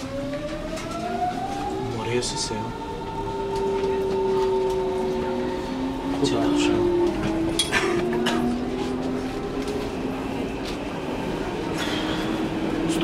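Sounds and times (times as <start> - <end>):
train hum and whine: 0.0 - 13.0.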